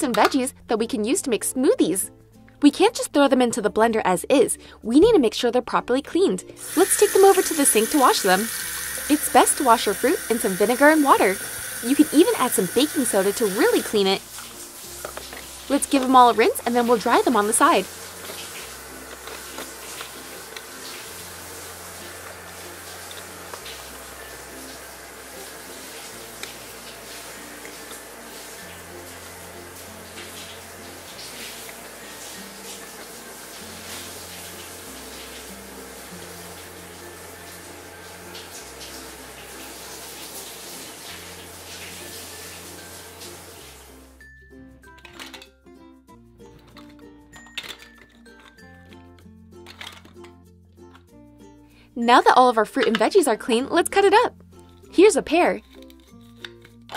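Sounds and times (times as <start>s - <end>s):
water running from toy faucet: 6.6s - 44.2s
plastic pieces clicking: 44.9s - 45.6s, 46.6s - 51.0s, 55.6s - 56.9s.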